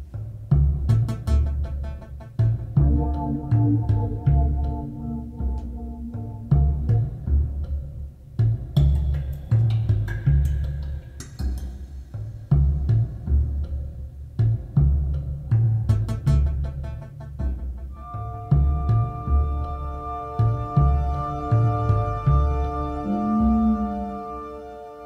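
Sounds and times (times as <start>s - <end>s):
music with slow deep drum beats: 0.0s - 24.2s.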